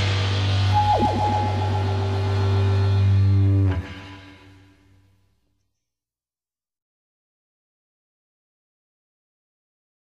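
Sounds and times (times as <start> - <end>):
loud deep drone: 0.0 - 4.7
electric guitars and bass chord: 0.1 - 4.8
quick downward pitch swoop: 0.8 - 3.0.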